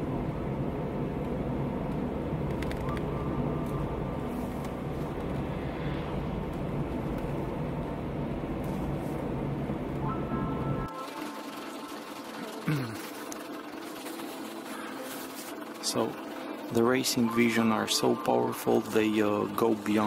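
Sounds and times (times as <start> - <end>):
in-car road and engine rumble: 0.0 - 20.0.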